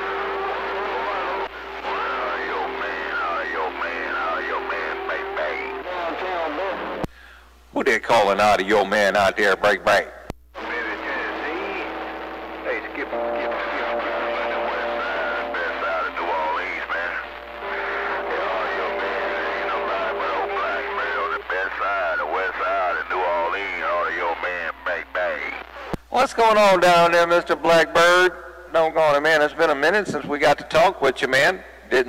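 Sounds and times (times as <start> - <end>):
garbled voice over radio static: 0.0 - 7.1, 7.8 - 28.2.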